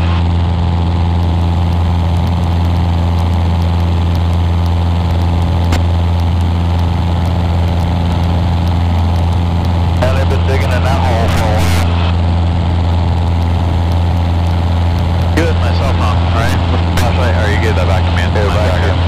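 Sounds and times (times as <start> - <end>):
airplane engine and propeller droning: 0.0 - 19.0.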